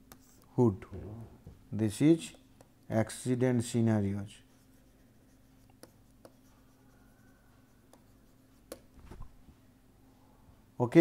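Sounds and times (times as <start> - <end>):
low steady hum: 0.0 - 11.0
stylus tapping on tablet: 8.7 - 8.9.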